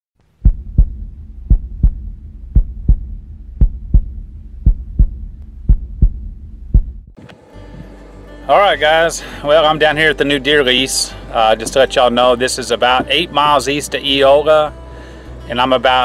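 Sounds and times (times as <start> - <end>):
low steady hum: 0.2 - 16.0
heartbeat thumps: 0.3 - 7.9.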